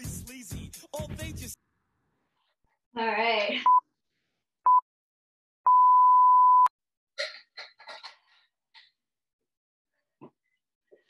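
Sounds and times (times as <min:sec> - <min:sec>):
timer beeps: 0:05.7 - 0:06.7.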